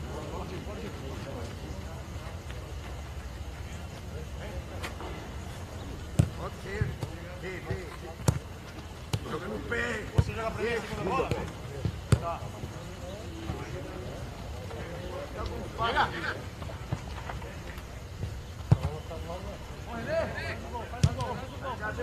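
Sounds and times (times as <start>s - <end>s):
low outdoor background noise: 0.0s - 22.0s
football kick thuds: 18.2s - 19.1s, 21.0s - 21.4s.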